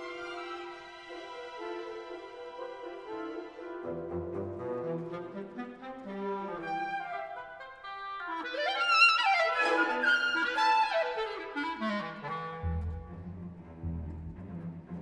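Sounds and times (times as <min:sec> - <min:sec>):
orchestral accompaniment: 0:00.0 - 0:07.8, 0:08.4 - 0:15.0
solo clarinet: 0:03.1 - 0:13.4
low strings: 0:12.6 - 0:15.0.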